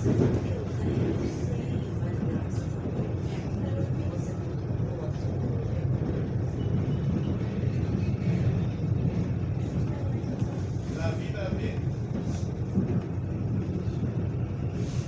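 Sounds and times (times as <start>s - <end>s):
electric train rumble: 0.0s - 15.0s.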